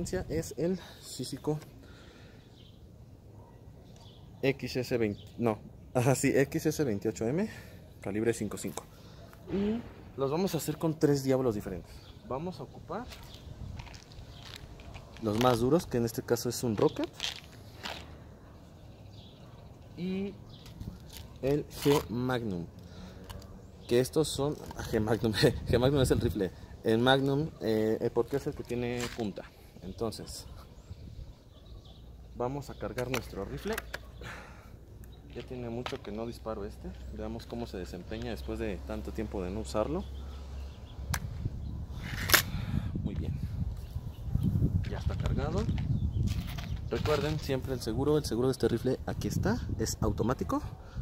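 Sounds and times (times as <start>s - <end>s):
wind rumble on microphone: 13.2s - 15.1s, 24.8s - 26.8s, 41.0s - 51.0s
air rifle barrel clicking open: 42.1s - 42.6s.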